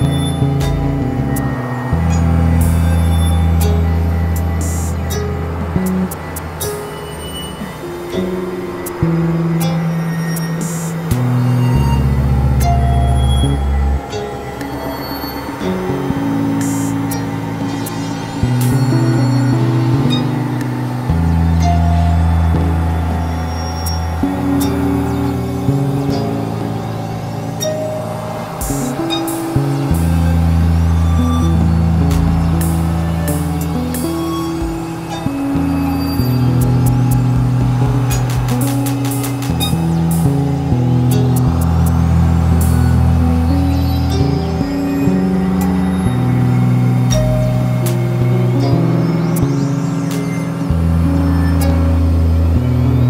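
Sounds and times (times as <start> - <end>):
experimental electronic music: 0.0 - 53.0
synthesizer drones: 0.0 - 53.0.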